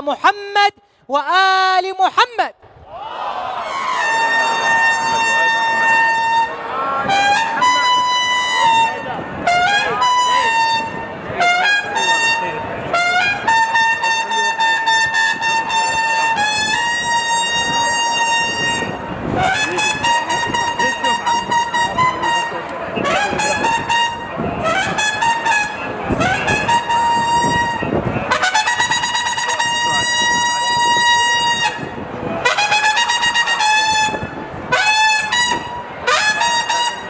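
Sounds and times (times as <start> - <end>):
crowd noise: 0.0 - 37.0
trumpet holding long high note: 3.6 - 37.0.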